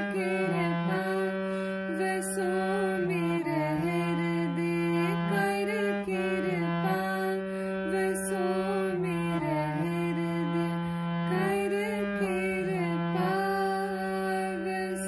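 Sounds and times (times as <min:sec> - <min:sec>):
harmonium playing slow melody: 0:00.0 - 0:15.0.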